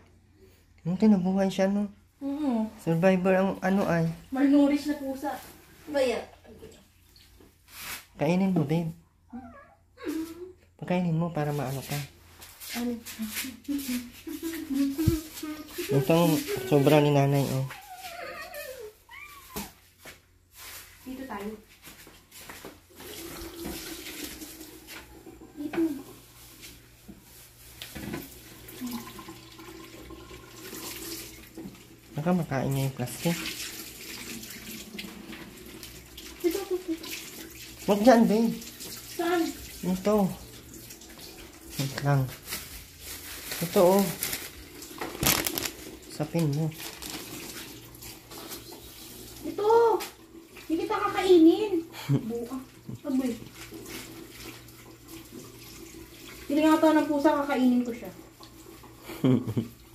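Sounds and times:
kitten meowing: 17.8 - 19.7
crinkling rustle of plastic: 26.2 - 28.7, 41.2 - 49.7.

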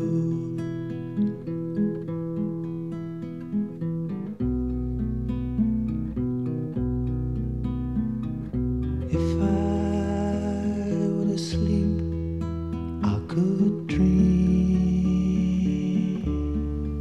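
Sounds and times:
acoustic guitar playing: 0.0 - 17.0
deep bass notes: 4.5 - 13.3.

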